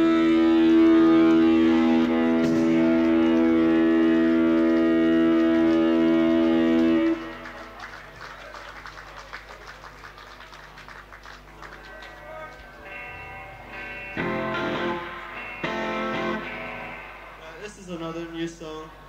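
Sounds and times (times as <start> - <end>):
electric guitars ringing chord: 0.0 - 8.2, 11.4 - 19.0
faint live room noise: 0.0 - 19.0.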